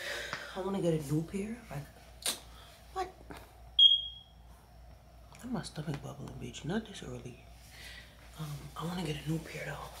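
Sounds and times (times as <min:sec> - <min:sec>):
high-pitched electronic chirp: 0:03.8 - 0:04.3.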